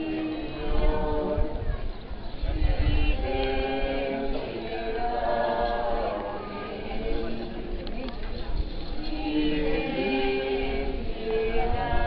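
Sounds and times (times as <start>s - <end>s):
group singing a hymn: 0.0s - 8.2s, 8.8s - 12.0s.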